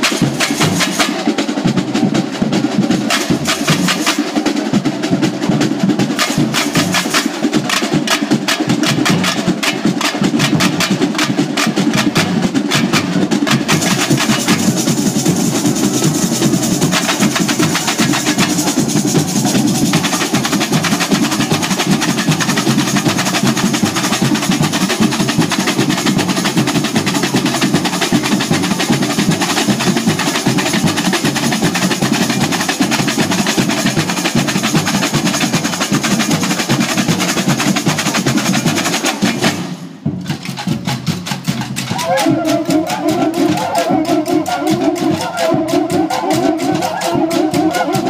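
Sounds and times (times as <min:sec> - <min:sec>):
snare drums: 0:00.0 - 0:48.0
bass drums: 0:04.7 - 0:48.0
tamborins struck with sticks: 0:40.1 - 0:48.0.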